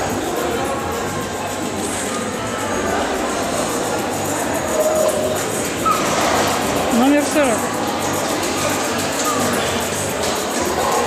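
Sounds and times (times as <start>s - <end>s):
crowd in a large hall: 0.0s - 11.0s
faint music: 0.0s - 11.0s.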